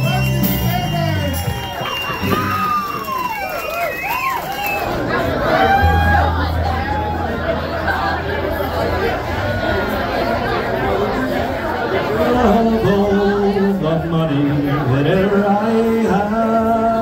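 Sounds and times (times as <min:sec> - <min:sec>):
crowd chatter: 0:00.0 - 0:17.0
man singing folk ballad: 0:12.2 - 0:17.0.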